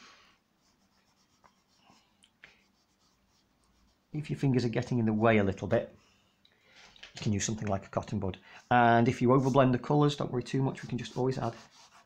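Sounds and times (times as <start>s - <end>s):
chalk pastel scratching paper: 0.5s - 4.3s, 8.6s - 12.0s.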